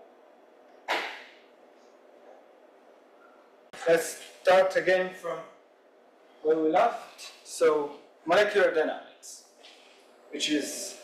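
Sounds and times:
sharp knock: 0:00.9 - 0:01.4.

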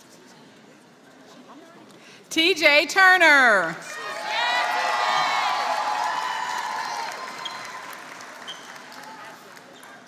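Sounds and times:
audience clapping and cheering: 0:04.0 - 0:10.0.

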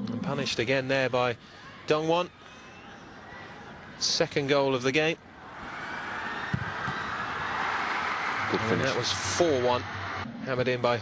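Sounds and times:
stadium crowd cheering: 0:05.4 - 0:11.0.

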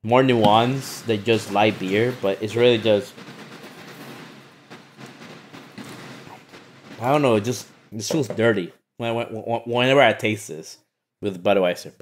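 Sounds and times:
speech: 0:00.0 - 0:03.2, 0:07.0 - 0:12.0.

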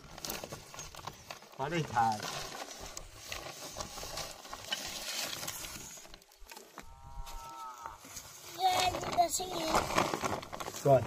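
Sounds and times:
plastic sack rustling: 0:00.0 - 0:11.0.

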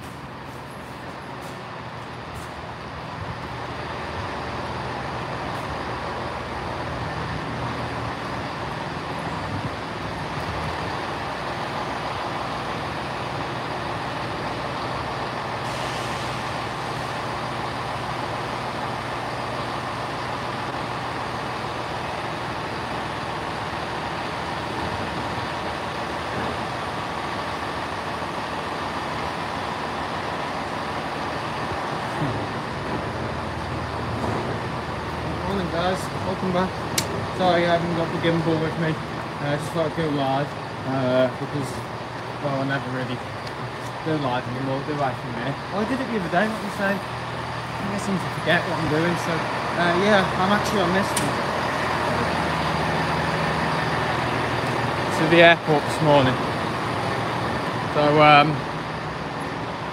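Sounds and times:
diesel train engines idling: 0:00.0 - 0:59.9
air hiss: 0:15.6 - 0:16.6.

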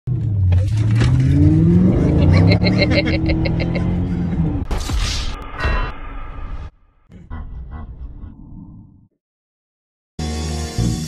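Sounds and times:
car engine at full throttle: 0:00.1 - 0:04.7.

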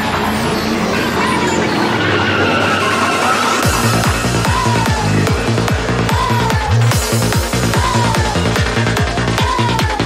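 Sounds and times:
sustained synth tones: 0:00.0 - 0:08.7
noisy synth sweep: 0:00.0 - 0:09.4.

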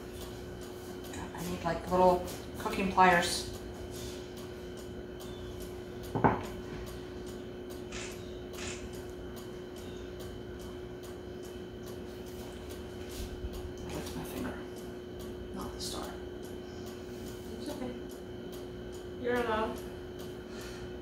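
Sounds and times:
faint steady hum: 0:00.0 - 0:21.0
plate knocking on countertop: 0:06.2 - 0:06.5.

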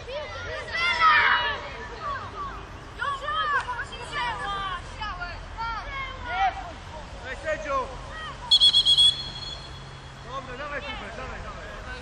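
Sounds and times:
warbling pea whistle blast: 0:08.5 - 0:10.0.

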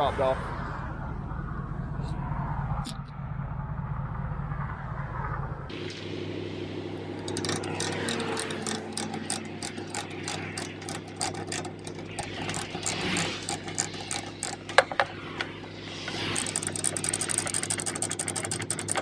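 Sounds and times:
steady low hum: 0:00.0 - 0:19.0
ratchet chain binder clicking: 0:07.1 - 0:19.0
chain and hook clanking: 0:07.2 - 0:15.1, 0:16.1 - 0:19.0.

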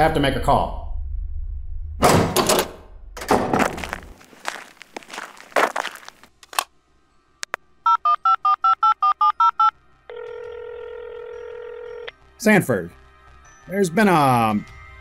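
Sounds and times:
steady telephone line tone: 0:07.9 - 0:12.1
telephone dialing beeps: 0:07.9 - 0:12.1
phone line click: 0:10.1 - 0:12.1.

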